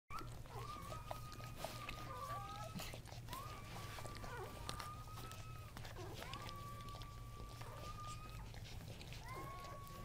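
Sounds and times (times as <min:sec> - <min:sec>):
puppy whining: 0:00.1 - 0:10.0.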